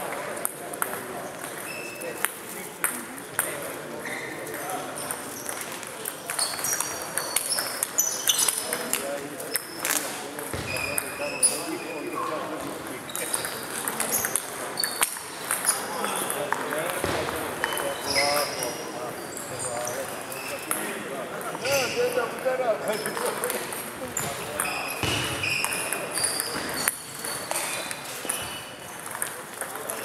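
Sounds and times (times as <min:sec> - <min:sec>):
echoing ball strikes: 0:25.0 - 0:25.5.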